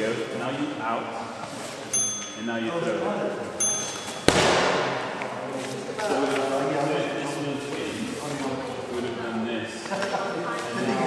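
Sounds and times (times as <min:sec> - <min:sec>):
chatter in echoing hall: 0:00.0 - 0:11.0
short high ding: 0:01.9 - 0:02.7, 0:03.6 - 0:05.0
sharp ringing thud: 0:02.0 - 0:02.6, 0:03.6 - 0:05.2.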